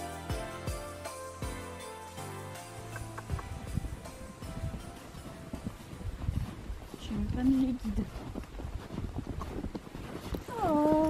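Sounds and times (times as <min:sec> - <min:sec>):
hooves crunching in snow: 0:02.9 - 0:11.0
footsteps crunching in snow: 0:03.4 - 0:11.0.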